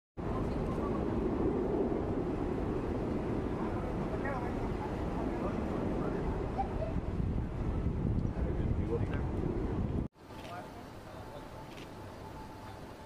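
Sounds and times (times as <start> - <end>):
street noise low rumble: 0.2 - 13.0
faint distant voices: 10.2 - 13.0.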